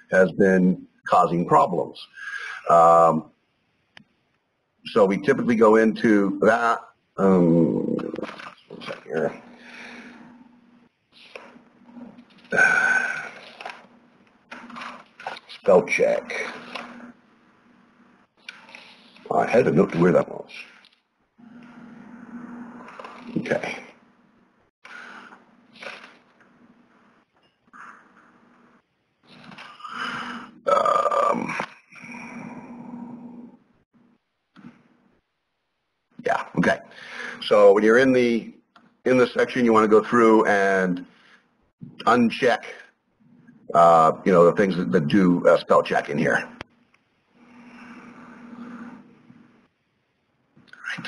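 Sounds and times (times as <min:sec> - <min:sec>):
faint steady hum: 0:00.0 - 0:35.3, 0:36.2 - 0:51.0
man speaking softly: 0:00.1 - 0:03.2, 0:04.9 - 0:09.4, 0:12.5 - 0:13.6, 0:15.3 - 0:16.8, 0:19.2 - 0:20.7, 0:23.2 - 0:23.9, 0:36.2 - 0:36.8, 0:43.7 - 0:46.6, 0:50.7 - 0:51.0.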